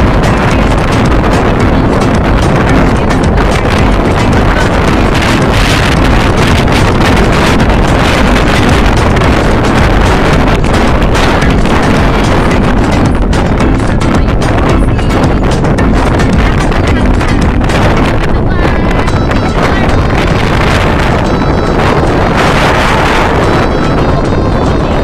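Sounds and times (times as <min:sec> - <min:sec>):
breaking surf: 0:00.0 - 0:25.0
strong wind buffeting microphone: 0:00.0 - 0:25.0.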